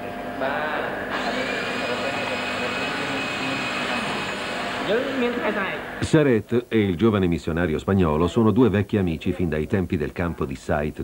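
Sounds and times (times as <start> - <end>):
power tool whining: 1.0 - 6.0.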